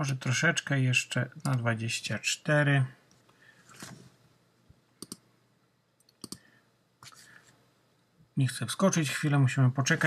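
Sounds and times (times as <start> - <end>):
mouse button clicking: 5.0 - 5.2.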